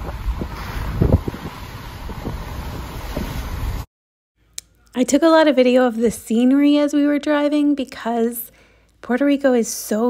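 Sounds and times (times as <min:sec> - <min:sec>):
wind buffeting microphone: 0:00.0 - 0:03.9.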